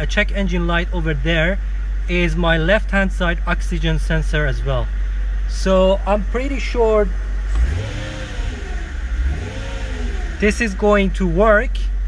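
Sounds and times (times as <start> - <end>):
car engine revving: 7.1 - 11.2.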